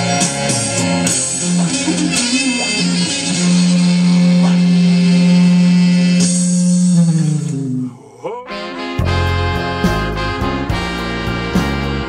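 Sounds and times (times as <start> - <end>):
electric guitar blues: 0.0 - 7.6.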